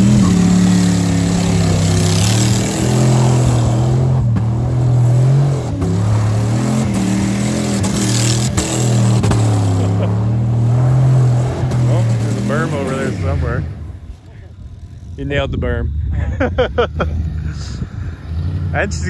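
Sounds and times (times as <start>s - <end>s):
engine revving hard: 0.0s - 13.9s.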